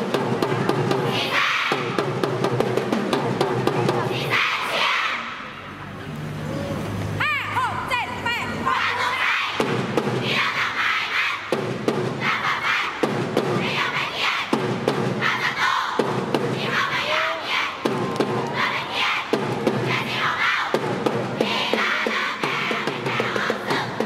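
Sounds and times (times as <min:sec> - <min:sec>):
drum beats: 0:00.0 - 0:04.4, 0:09.6 - 0:10.6, 0:11.4 - 0:24.0
crowd chanting and shouting: 0:00.0 - 0:24.0.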